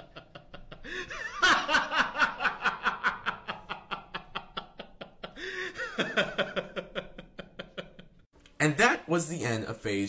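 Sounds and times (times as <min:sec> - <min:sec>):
man laughing: 0:00.0 - 0:08.2.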